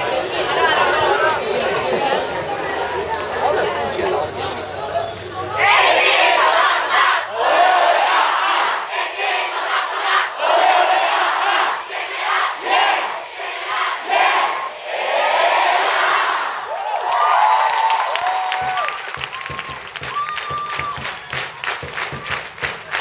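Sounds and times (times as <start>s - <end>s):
crowd chanting a cheer: 0.0s - 23.0s
rhythmic hand clapping: 17.0s - 23.0s.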